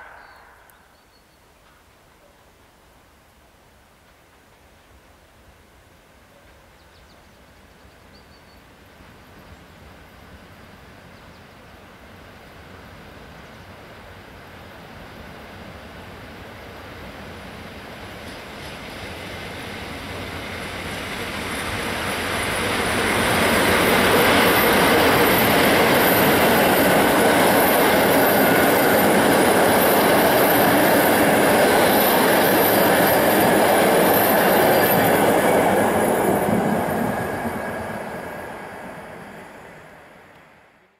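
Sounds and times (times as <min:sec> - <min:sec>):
train wheels rumbling on rail: 0:12.0 - 0:40.5.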